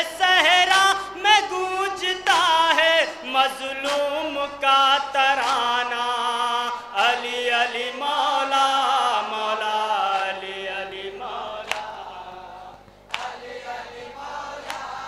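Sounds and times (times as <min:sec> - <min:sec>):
men chanting a lament: 0:00.0 - 0:15.0.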